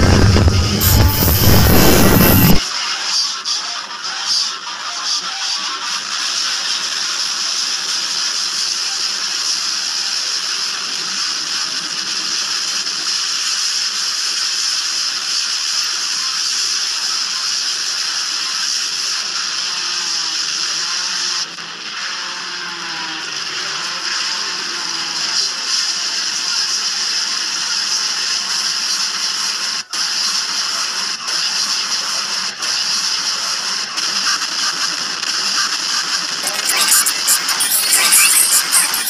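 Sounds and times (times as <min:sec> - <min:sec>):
harsh distorted hiss: 0:00.0 - 0:02.6, 0:34.1 - 0:39.0.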